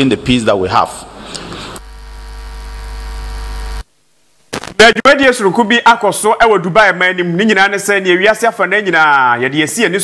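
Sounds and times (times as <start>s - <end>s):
electrical mains hum: 0.0s - 4.8s.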